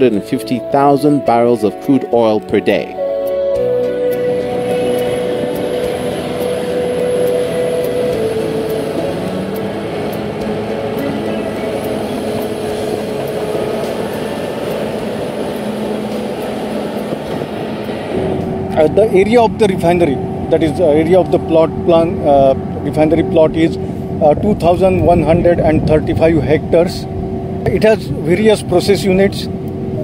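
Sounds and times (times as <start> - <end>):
bulldozer diesel engine running: 3.5 - 30.0.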